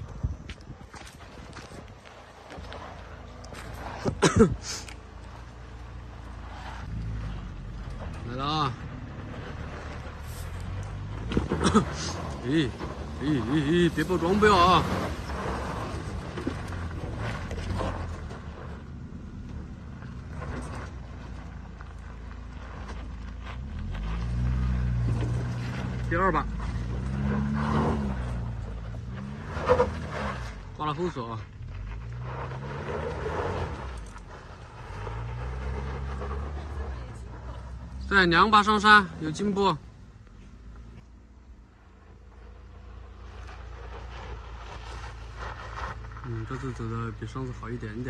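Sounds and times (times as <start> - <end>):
suv engine revving: 2.2 - 48.0.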